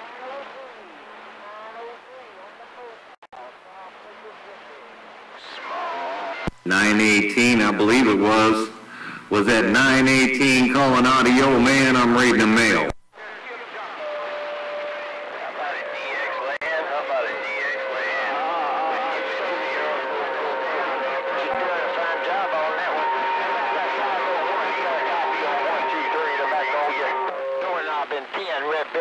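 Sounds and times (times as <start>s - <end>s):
radio static: 0.0s - 29.0s
garbled radio voices: 2.0s - 29.0s
radio whistles: 10.2s - 29.0s.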